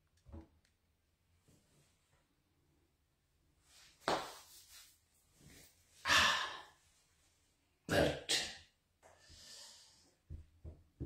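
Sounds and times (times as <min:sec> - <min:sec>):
man breathing: 0:06.0 - 0:06.8, 0:09.0 - 0:10.3.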